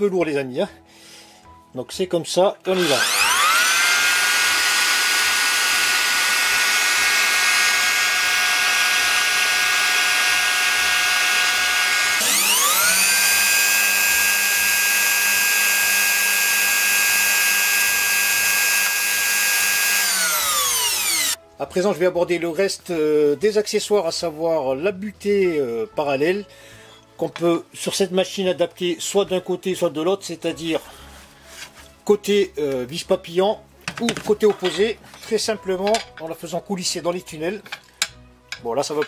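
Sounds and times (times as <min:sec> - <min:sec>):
wood router motor whine: 0:02.7 - 0:21.4.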